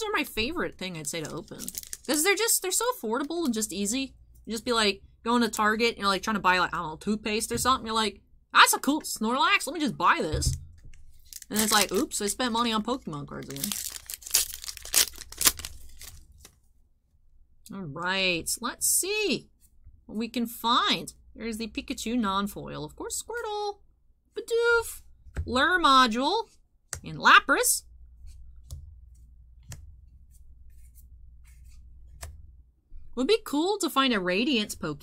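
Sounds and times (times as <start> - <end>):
trading cards rustling: 0.9 - 2.4, 10.8 - 16.6
foil wrapper crinkling: 1.0 - 2.4, 11.0 - 16.6.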